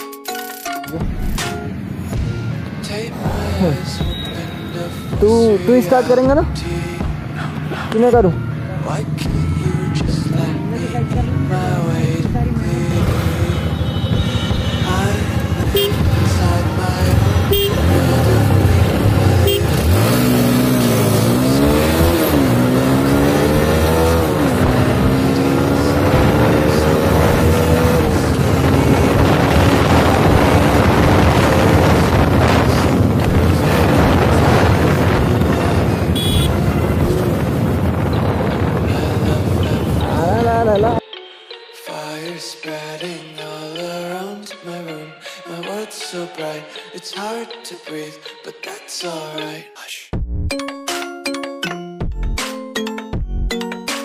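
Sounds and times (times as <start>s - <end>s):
motorcycle engine accelerating: 8.8s - 41.0s
wind rushing over microphone: 20.0s - 41.0s.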